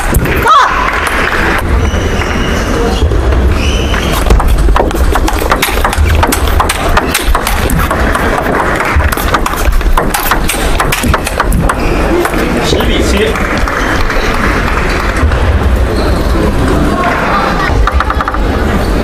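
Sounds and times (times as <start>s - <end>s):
hall background noise: 0.0s - 19.0s
ping pong ball clicking off bats: 4.2s - 12.4s, 17.8s - 18.6s.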